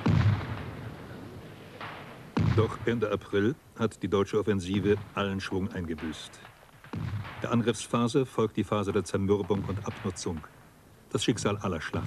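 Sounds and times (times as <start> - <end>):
artillery gun boom: 0.0 - 3.3, 4.7 - 8.1.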